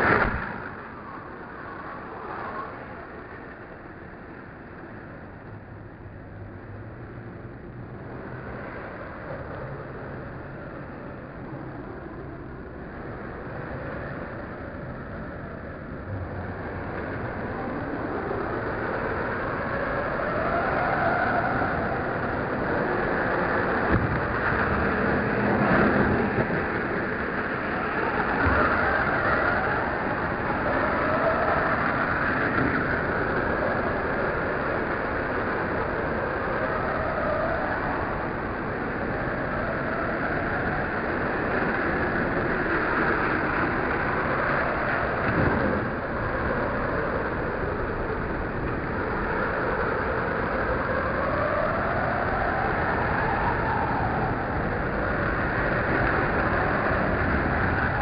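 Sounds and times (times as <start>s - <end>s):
rumble of traffic: 0.0s - 58.0s.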